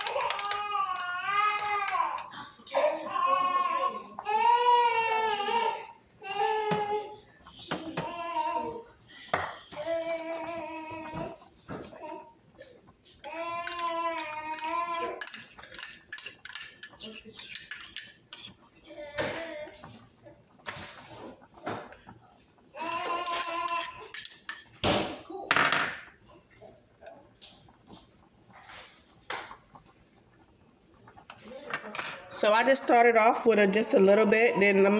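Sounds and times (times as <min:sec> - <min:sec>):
baby crying: 0:00.0 - 0:07.2, 0:13.2 - 0:15.3, 0:22.8 - 0:24.1
metal spoon clinking against bowl: 0:13.6 - 0:18.5, 0:22.8 - 0:24.8, 0:31.9 - 0:32.3.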